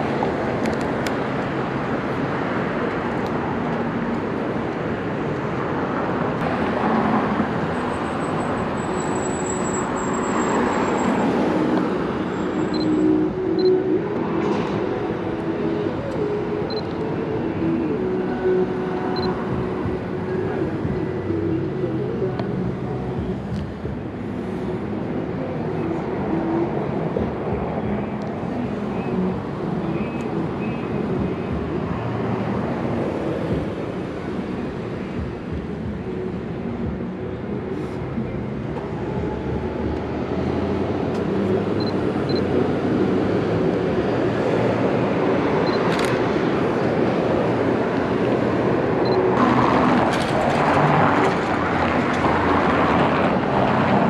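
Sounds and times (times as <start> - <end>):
cars passing: 0.0 - 54.0
vehicle engine hum: 0.0 - 54.0.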